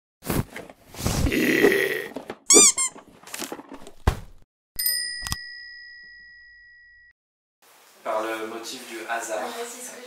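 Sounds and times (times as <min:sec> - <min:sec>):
cartoon squeaks: 0:02.5 - 0:03.0.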